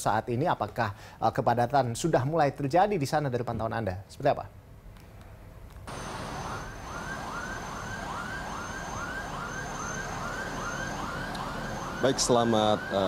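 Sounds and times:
highway traffic: 5.9 - 13.0
siren rising sweep: 5.9 - 13.0.

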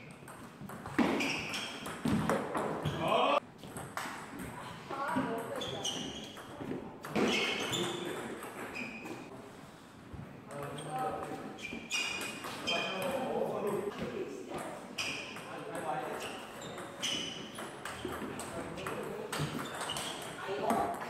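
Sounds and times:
table tennis ball pinging: 0.1 - 2.8, 10.6 - 13.9, 14.6 - 21.0.

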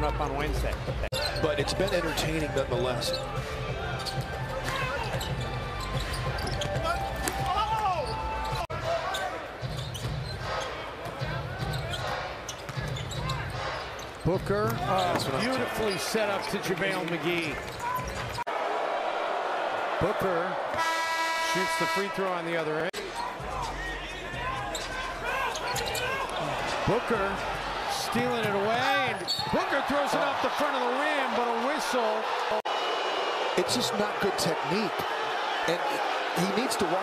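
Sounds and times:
sneaker squeaks: 1.1 - 2.3, 3.0 - 16.6, 24.5 - 26.8, 29.0 - 29.6
arena crowd rumble: 21.6 - 37.0.

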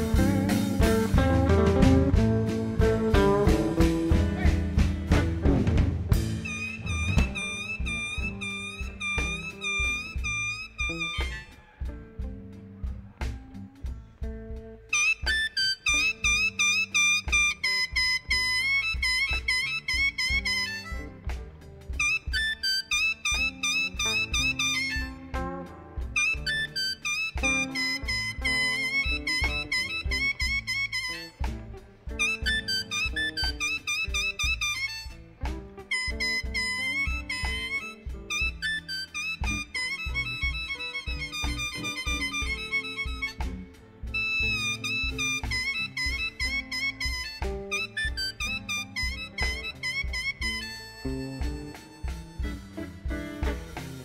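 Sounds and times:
bass: 0.0 - 54.0
blues harmonica: 0.0 - 54.0
steady drum beat: 0.0 - 54.0.

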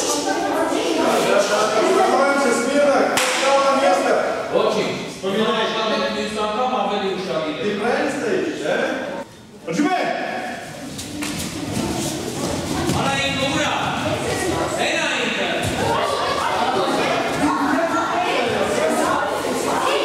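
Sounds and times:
children chattering and calling out: 0.0 - 6.2, 10.5 - 20.0.

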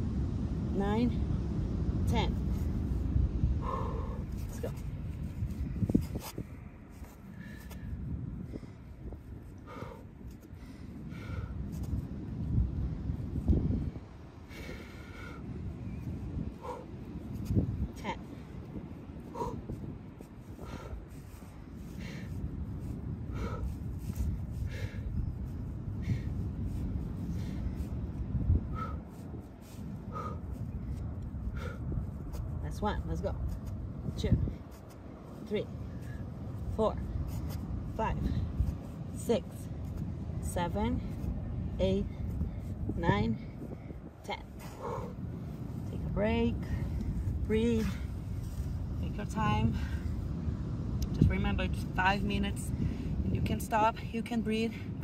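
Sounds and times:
wind rumble on microphone: 0.0 - 55.0.

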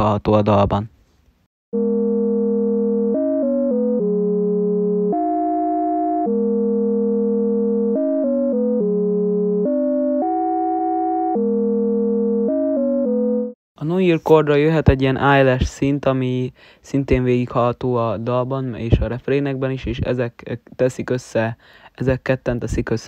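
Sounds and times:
sustained synth chords: 1.8 - 13.6.

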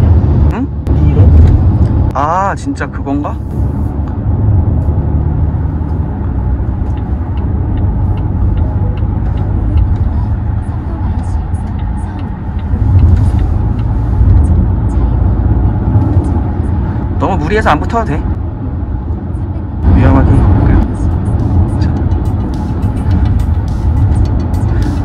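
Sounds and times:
car cabin road rumble: 0.0 - 25.0.

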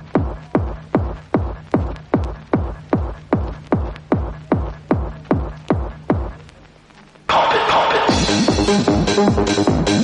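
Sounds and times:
kick drum beats dropping in pitch: 0.0 - 6.6, 7.3 - 10.0
faint steady hum: 0.0 - 10.0.

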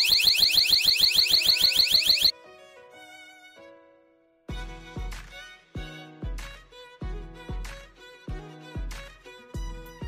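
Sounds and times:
alarm siren warbling: 0.0 - 2.3.

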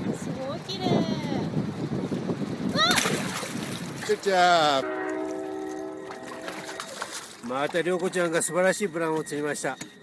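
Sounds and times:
moving water washing: 0.0 - 9.8
water splashing: 2.5 - 9.5.

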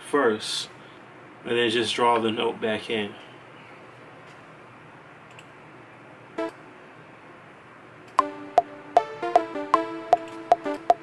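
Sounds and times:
plucky synth lead melody: 8.2 - 11.0.

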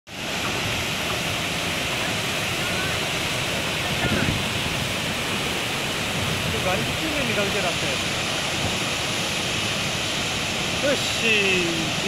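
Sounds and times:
floodwater rushing: 0.1 - 12.0.

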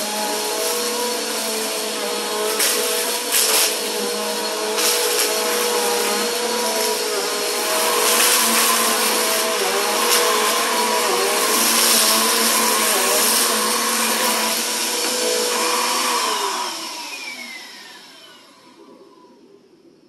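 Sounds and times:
vacuum cleaner running on carpet: 0.0 - 19.5.

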